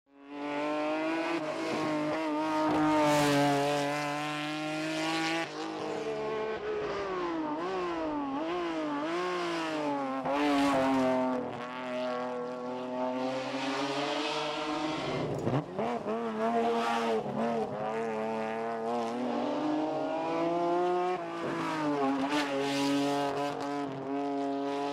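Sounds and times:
car engine at high revs: 0.1s - 24.9s.

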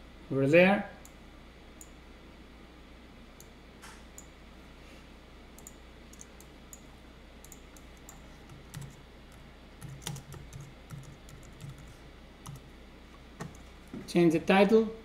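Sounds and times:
computer keyboard typing: 5.6s - 6.8s, 7.4s - 12.7s.

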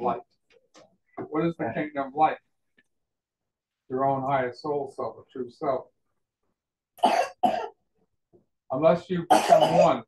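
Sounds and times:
person coughing: 7.0s - 7.8s, 9.3s - 10.0s.

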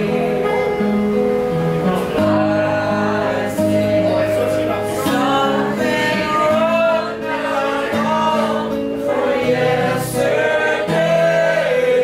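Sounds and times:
man singing: 0.0s - 0.8s, 1.9s - 12.0s
acoustic guitar: 0.0s - 12.0s.

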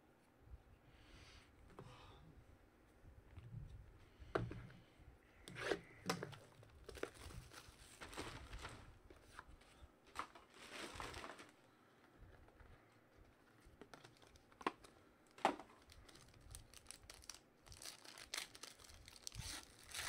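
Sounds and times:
foil pack crinkling and tearing: 6.8s - 9.0s, 10.1s - 11.6s, 13.9s - 20.0s.

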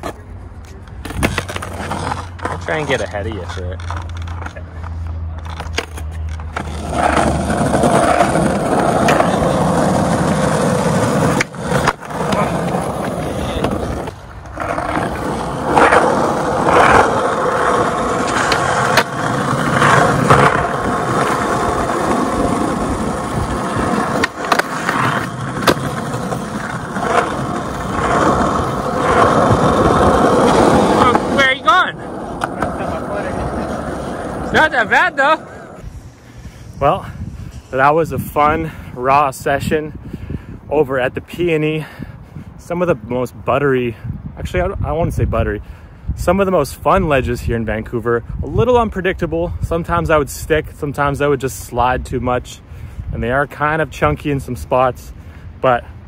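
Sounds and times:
skateboard clacking on ground: 0.0s - 35.8s
skateboard wheels rolling on pavement: 0.0s - 45.6s, 46.2s - 56.0s.

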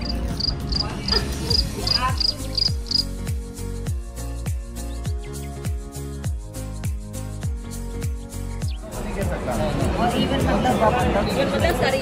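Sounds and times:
cricket chirping: 0.0s - 0.8s, 1.5s - 3.2s
music with deep bass and beat: 0.0s - 12.0s.

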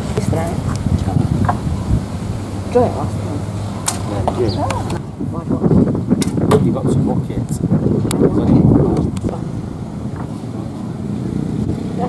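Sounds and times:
faint voices: 0.0s - 12.0s
wind rumble on microphone: 0.0s - 12.0s.

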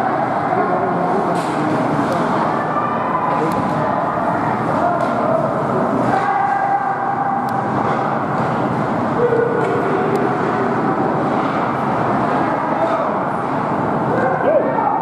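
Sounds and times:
voices: 0.0s - 15.0s
people shouting: 6.0s - 7.5s.

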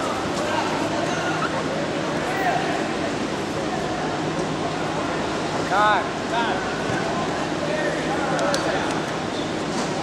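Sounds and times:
indoor hall background noise: 0.0s - 10.0s.

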